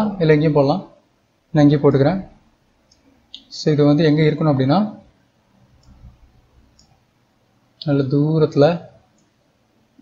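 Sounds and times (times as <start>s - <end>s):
man narrating: 0.0s - 1.0s, 1.6s - 2.4s, 3.4s - 5.1s, 7.8s - 8.9s
computer mouse clicks: 2.8s - 3.5s, 5.7s - 6.1s, 6.7s - 7.0s.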